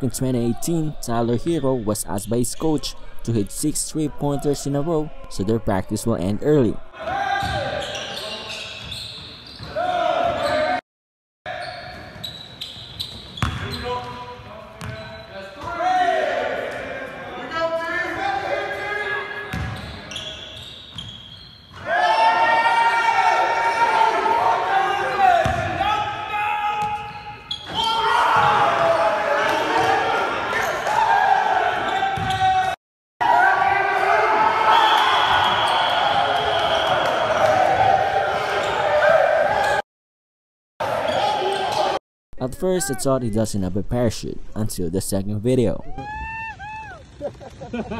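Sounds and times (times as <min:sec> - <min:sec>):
players shouting and cheering: 0:00.0 - 0:08.5, 0:09.7 - 0:10.8, 0:14.9 - 0:19.6, 0:21.8 - 0:39.8, 0:40.8 - 0:43.4, 0:45.6 - 0:47.3
basketball bouncing on hardwood: 0:13.4 - 0:13.6.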